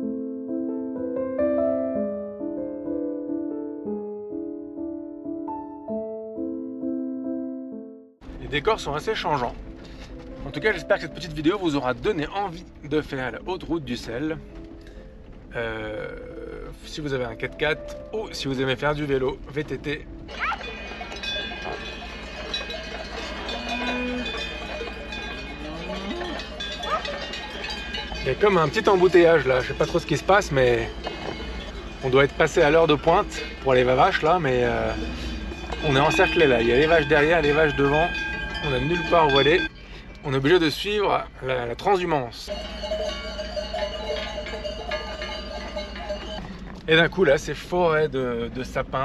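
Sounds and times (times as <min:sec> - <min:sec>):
cowbells clanking: 0:19.8 - 0:47.3
cattle calling: 0:20.3 - 0:39.7, 0:42.5 - 0:46.5
cow bells ringing: 0:20.3 - 0:47.2.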